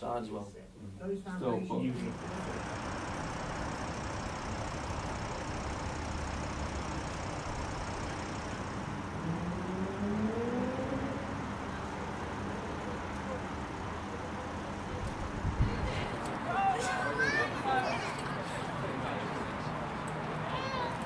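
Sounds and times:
traffic rumble: 1.8 - 21.0
vehicle engine rising in pitch: 2.0 - 12.9.

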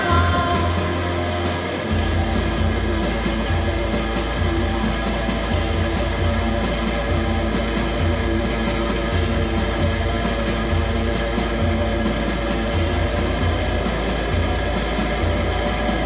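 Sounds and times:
electric guitar: 0.0 - 16.0
tambourines shaking: 0.0 - 16.0
steady low pulse: 1.9 - 16.0.

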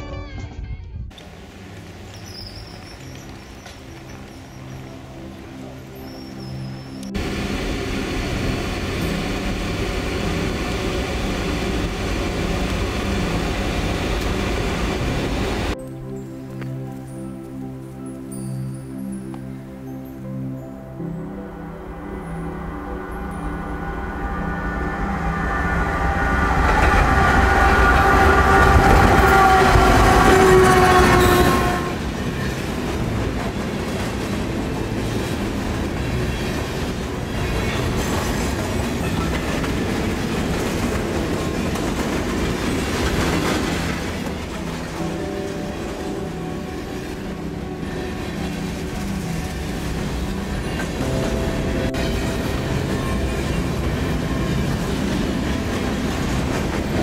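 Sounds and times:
train horn chord: 6.9 - 15.8, 21.2 - 57.0
freight cars rumbling and clacking: 7.1 - 15.8, 22.5 - 57.0.

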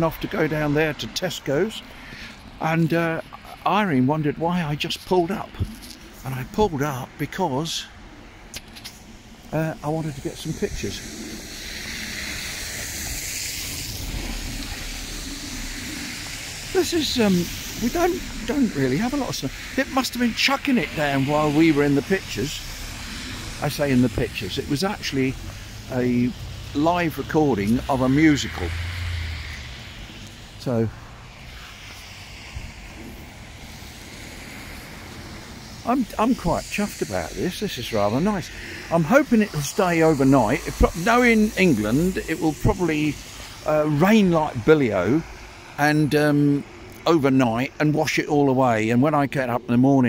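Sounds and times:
tyres hissing on wet road: 0.0 - 50.0
low rumble: 8.4 - 37.9.

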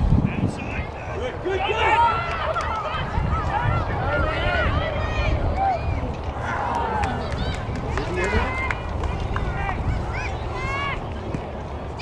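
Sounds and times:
wind rumble on microphone: 0.0 - 11.9
players and spectators shouting: 1.1 - 12.0.

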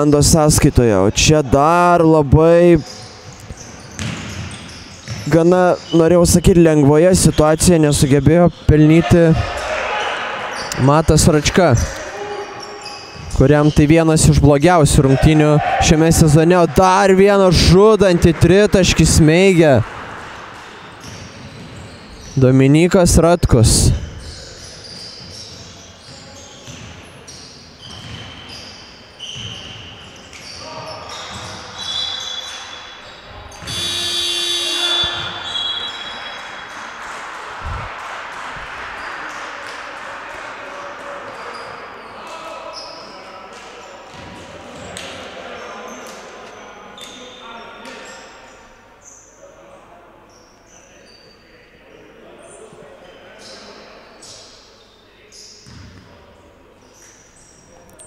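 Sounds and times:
players calling out: 0.0 - 27.4, 29.2 - 37.9
sneakers squeaking on court: 2.8 - 6.5, 11.7 - 14.0, 20.0 - 22.4, 23.9 - 36.8, 41.4 - 43.2, 43.8 - 45.1, 54.2 - 56.2
basketball bouncing: 3.3 - 5.3, 55.6 - 56.0
referee whistle blast: 33.6 - 36.4.

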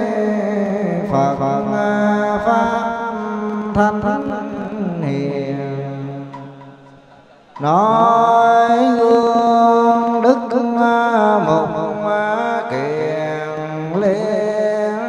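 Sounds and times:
monks chanting through a microphone: 0.0 - 15.0.

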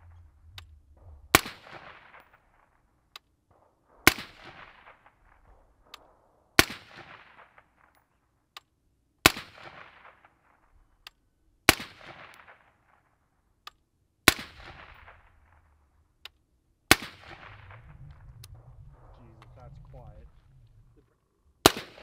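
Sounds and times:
suppressed rifle shots with echo: 0.0 - 8.2, 9.2 - 11.0, 11.6 - 13.2, 14.2 - 16.1, 16.9 - 19.1, 21.6 - 22.0.

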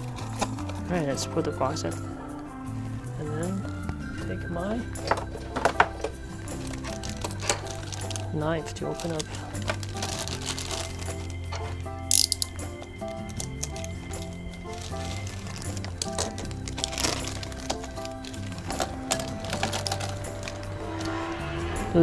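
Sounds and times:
background music held notes: 0.0 - 22.0
plastic parts clicking: 5.0 - 8.3, 8.9 - 21.2
plastic packaging crinkling: 5.0 - 21.2
plastic bag crackle: 5.0 - 21.3.

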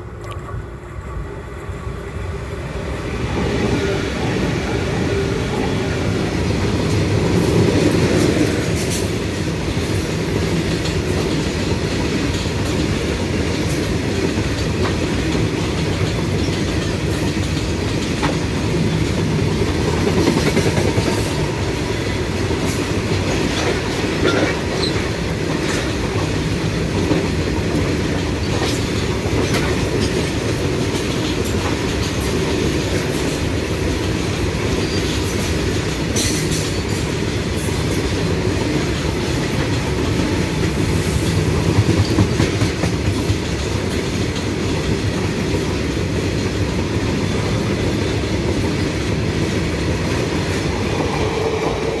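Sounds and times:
freight train wheels rumbling: 0.0 - 52.0
clickety-clack over rail joints: 3.2 - 52.0.

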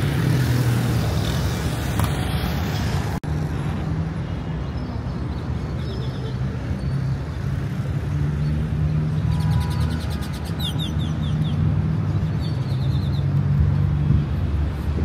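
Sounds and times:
city traffic rumble: 0.0 - 15.0.

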